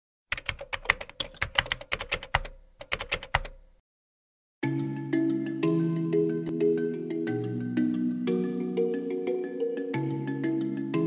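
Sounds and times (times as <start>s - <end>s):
computer keyboard typing: 0.3s - 3.6s.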